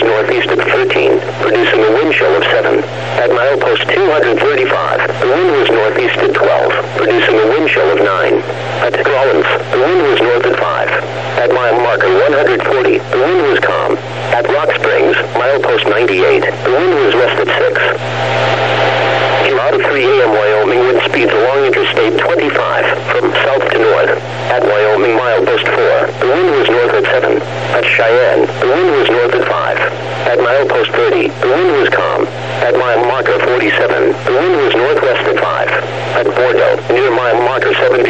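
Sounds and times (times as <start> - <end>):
low radio hum: 0.0 - 38.0
radio broadcast voice: 0.0 - 38.0.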